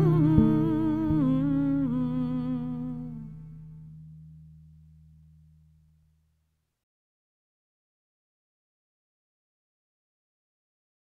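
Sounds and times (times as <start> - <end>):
hummed vocal with vibrato: 0.0 - 3.5
sustained low accompaniment note: 0.0 - 6.4
soft plucked note: 0.0 - 6.7.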